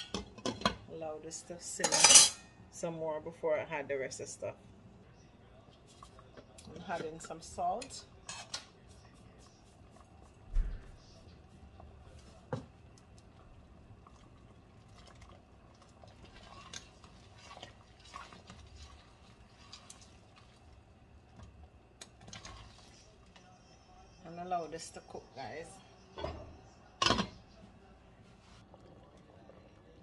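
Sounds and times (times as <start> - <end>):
metal spoon scraping pot: 1.8 - 2.4, 6.8 - 8.6.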